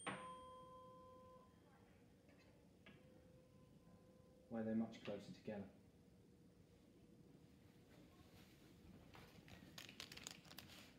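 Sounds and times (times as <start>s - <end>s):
tuning fork ringing: 0.0s - 1.6s.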